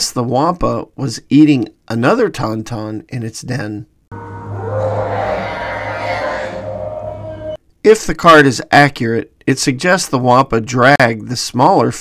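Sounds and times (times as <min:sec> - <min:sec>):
held higher tone sliding up: 0:04.1 - 0:07.6
low steady drone: 0:04.1 - 0:07.6.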